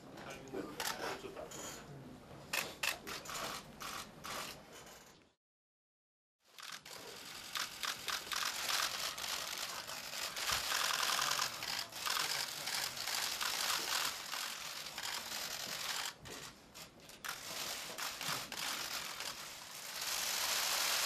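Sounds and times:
camera shutters clicking rapidly: 0:02.5 - 0:04.6, 0:06.6 - 0:16.2, 0:17.2 - 0:19.4.

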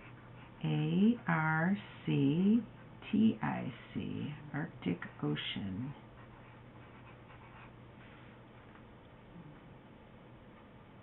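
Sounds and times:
low steady hum: 0:00.0 - 0:11.0
pencil scratching on paper: 0:06.1 - 0:07.8.

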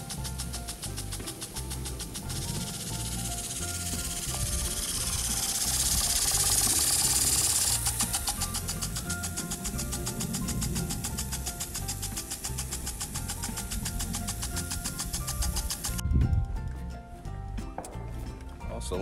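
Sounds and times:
impact sprinkler ticking: 0:00.0 - 0:16.0
sprinkler spraying with a hiss: 0:00.0 - 0:16.0
background music: 0:00.0 - 0:19.0.

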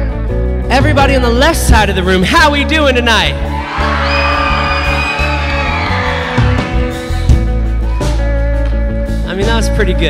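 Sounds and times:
steady bass: 0:00.0 - 0:10.0
electric guitar chords ringing: 0:03.7 - 0:10.0.

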